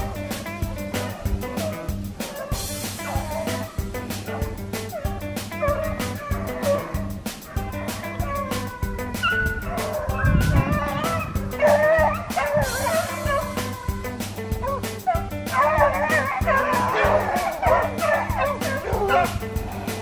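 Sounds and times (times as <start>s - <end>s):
background music with steady beat: 0.0s - 20.0s
dogs baying: 0.0s - 20.0s.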